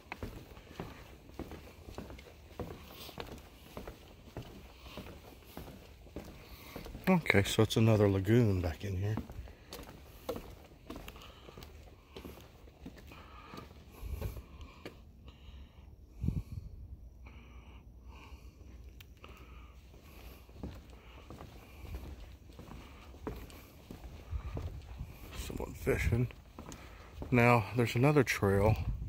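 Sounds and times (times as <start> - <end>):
footsteps on wooden boardwalk: 0.0 - 15.2, 18.6 - 29.0
wind rumble on microphone: 16.1 - 17.0, 24.3 - 26.2, 28.7 - 29.0.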